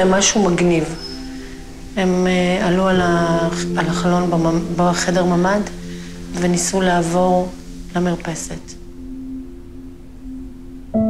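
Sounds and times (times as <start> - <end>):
low sustained tone: 0.0 - 11.0
resonant note ringing: 0.0 - 11.0.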